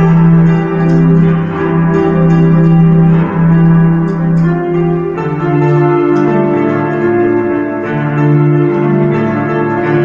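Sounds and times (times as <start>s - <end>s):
digital keyboard playing chords: 0.0s - 10.0s.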